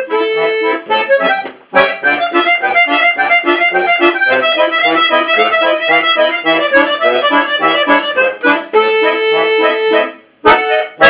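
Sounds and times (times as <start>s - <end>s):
button accordion fast passage: 0.0s - 11.0s.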